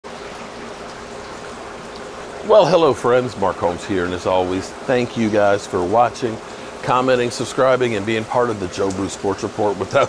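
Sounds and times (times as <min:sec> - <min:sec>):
heavy rain pouring: 0:00.0 - 0:10.0
water streaming and trickling: 0:00.0 - 0:10.0.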